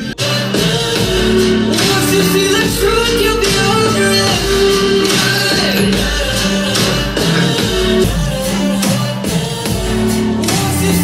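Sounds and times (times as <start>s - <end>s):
pop song through speaker: 0.0s - 11.0s.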